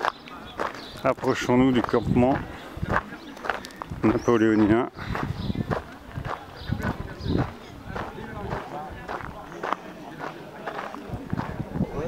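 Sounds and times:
footsteps on grass: 0.0 - 11.6
indistinct chatter: 0.0 - 12.0.

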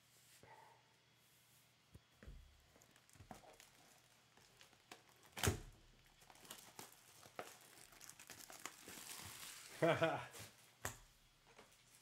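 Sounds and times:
plastic wrap crinkling and tearing: 2.6 - 10.2.

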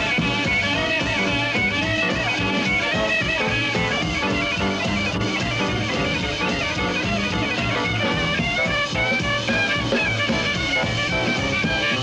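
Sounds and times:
bowed jazz violin: 0.0 - 12.0.

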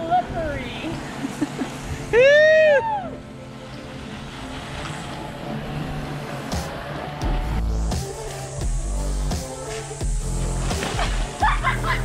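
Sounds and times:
background music with steady bass: 0.0 - 12.0.

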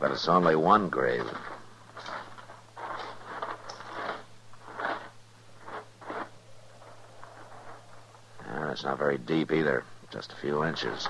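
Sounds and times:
crunching and scraping in dirt: 0.0 - 11.0
low recording hum: 0.0 - 11.0.

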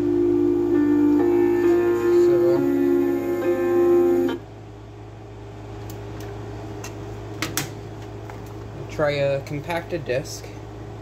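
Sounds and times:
guitar music from radio speaker: 0.0 - 4.4
low steady hum: 0.0 - 11.0.

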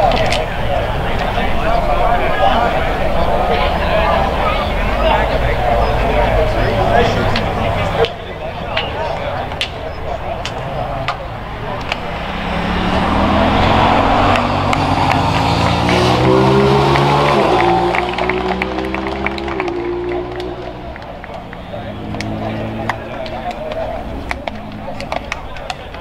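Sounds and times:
vehicle engine revving: 0.0 - 26.0.

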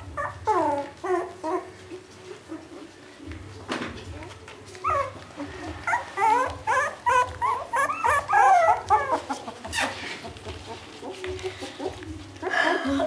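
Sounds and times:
puppies whining and yelping: 0.0 - 3.2, 4.1 - 13.0.

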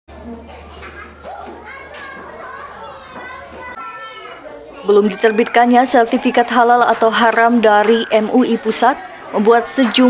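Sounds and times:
children chattering: 0.1 - 10.0.

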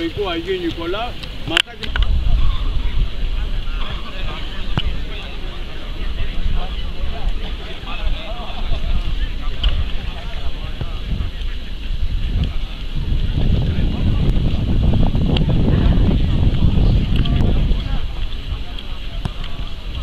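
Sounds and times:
indistinct chatter of people: 0.0 - 20.0
wind buffeting microphone: 0.0 - 20.0.

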